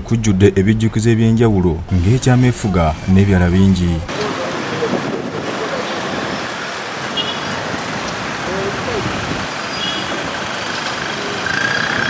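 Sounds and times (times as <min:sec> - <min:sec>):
road traffic hiss and rumble: 0:00.0 - 0:12.0.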